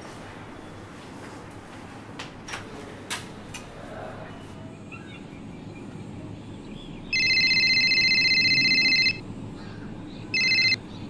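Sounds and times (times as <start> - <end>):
mobile phone ringtone trilling: 7.1 - 9.2, 10.4 - 10.8.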